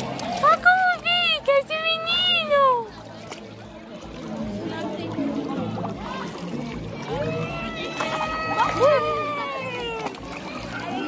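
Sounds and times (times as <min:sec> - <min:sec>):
faint voices: 0:00.0 - 0:11.0
pool water sloshing and lapping: 0:00.0 - 0:11.0.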